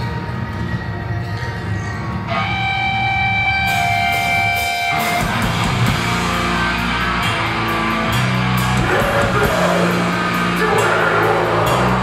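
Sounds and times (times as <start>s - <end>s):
sustained high guitar tone: 2.2s - 12.0s.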